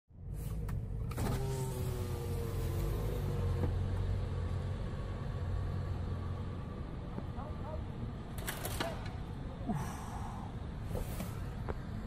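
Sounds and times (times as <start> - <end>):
low engine rumble: 0.1 - 12.0
power window motor whining: 1.0 - 4.0.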